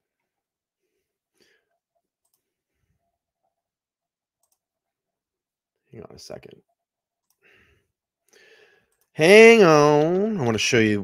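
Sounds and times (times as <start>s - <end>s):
computer mouse clicks: 2.2s - 2.5s, 4.4s - 4.7s.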